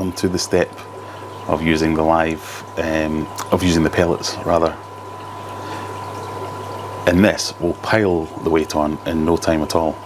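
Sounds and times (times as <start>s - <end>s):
aquarium filter bubbling: 0.0s - 10.0s.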